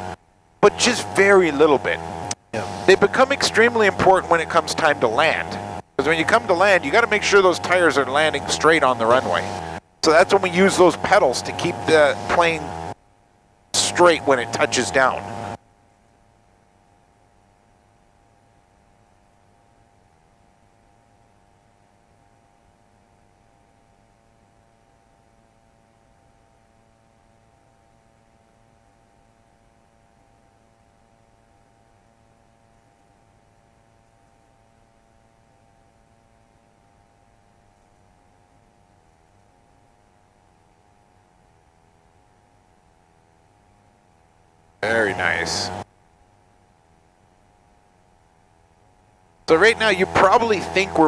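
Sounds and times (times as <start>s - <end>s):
faint hum with hiss: 0.0s - 51.0s.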